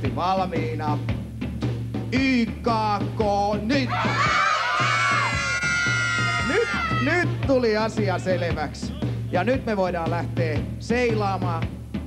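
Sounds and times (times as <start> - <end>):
children shouting together: 3.9 - 7.1.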